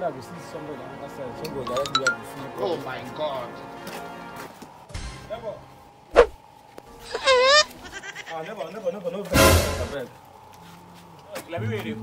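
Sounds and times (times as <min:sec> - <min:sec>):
goat bleating: 0:07.0 - 0:08.8.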